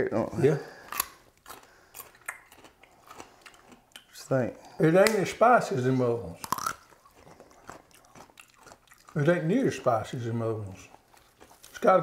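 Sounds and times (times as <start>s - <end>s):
person chewing crunchy radish: 0.6s - 5.2s, 5.9s - 12.0s.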